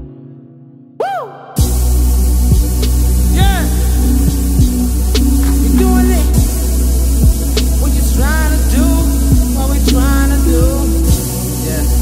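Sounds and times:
dark hip hop beat: 1.1s - 12.0s
synth tone bending: 1.6s - 12.0s.

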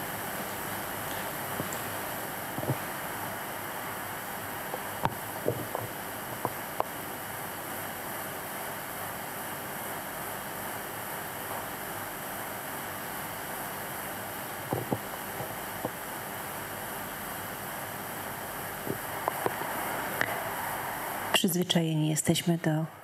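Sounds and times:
room tone hiss: 0.0s - 23.0s.

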